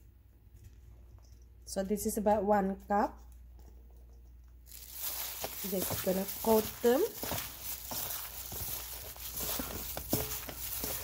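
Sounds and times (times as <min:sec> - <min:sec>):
plastic glove rustling: 0:04.6 - 0:11.0.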